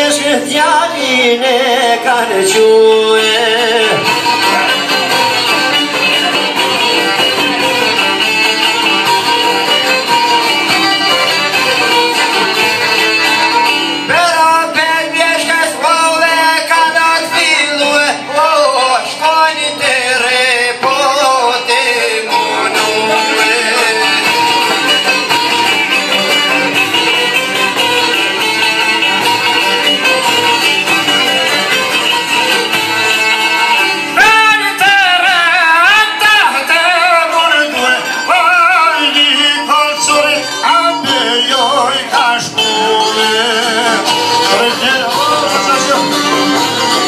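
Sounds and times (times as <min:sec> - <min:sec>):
man singing into a microphone: 0:00.0 - 0:05.0, 0:14.0 - 0:24.6, 0:34.1 - 0:46.9
lutes and violin playing: 0:02.3 - 0:16.6, 0:20.9 - 0:35.2, 0:36.4 - 0:47.0.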